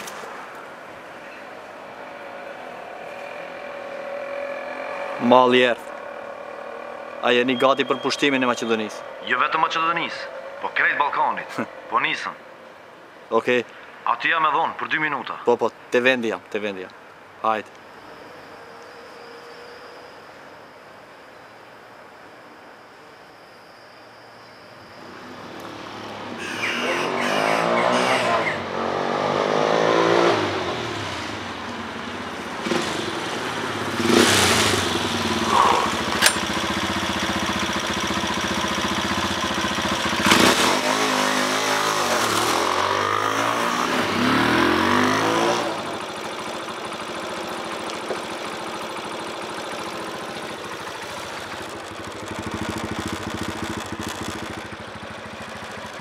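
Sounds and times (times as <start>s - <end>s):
motorcycle engine revving: 1.9s - 9.2s, 25.0s - 56.0s.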